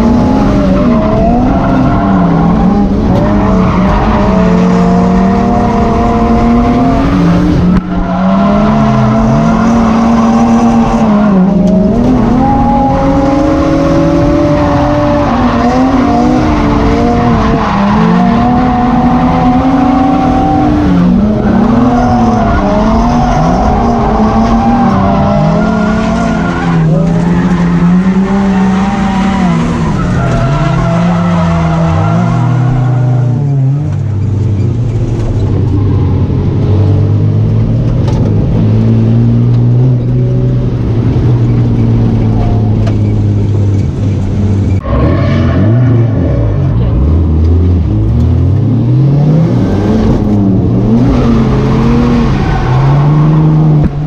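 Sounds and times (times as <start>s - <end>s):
car engine revving: 0.0s - 54.0s
tyre squeal and skidding: 21.2s - 35.1s.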